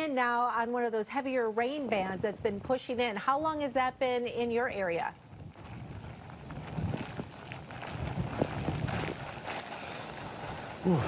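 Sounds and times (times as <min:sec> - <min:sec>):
wind gusting on microphone: 0:01.9 - 0:11.0.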